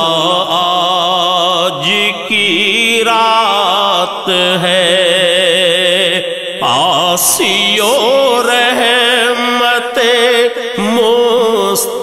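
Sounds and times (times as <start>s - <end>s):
man singing: 0.0s - 12.0s
sustained vocal backing: 0.0s - 12.0s.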